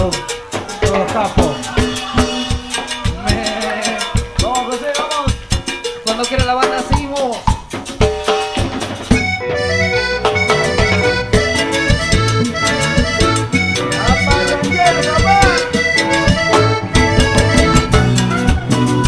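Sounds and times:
live cumbia band playing: 0:00.0 - 0:19.0.

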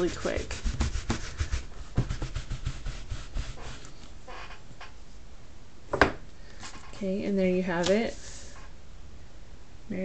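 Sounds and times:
rubber stamp being scrubbed: 0:00.0 - 0:04.6.

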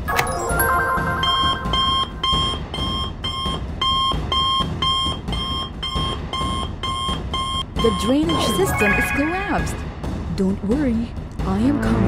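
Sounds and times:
short electronic beeps: 0:06.9 - 0:09.9.

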